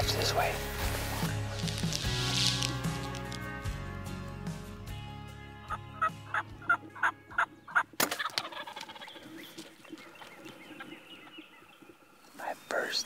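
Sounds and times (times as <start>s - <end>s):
music: 0.0s - 8.6s
turkey calls: 5.7s - 12.5s
turkey gobble: 6.0s - 11.3s.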